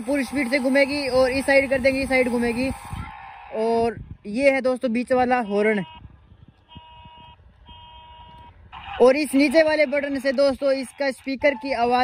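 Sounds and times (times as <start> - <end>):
electronic car horn honks: 5.4 - 6.1, 6.7 - 9.0.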